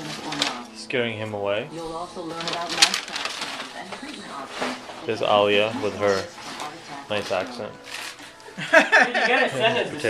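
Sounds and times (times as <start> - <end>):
indistinct talk: 0.0 - 8.4.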